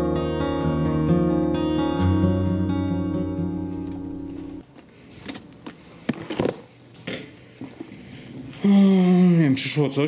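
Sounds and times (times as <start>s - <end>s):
acoustic guitar music: 0.0s - 4.6s.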